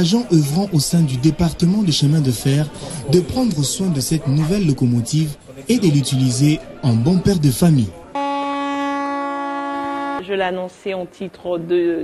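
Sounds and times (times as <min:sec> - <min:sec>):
steady horn-like tone: 0:08.2 - 0:10.3.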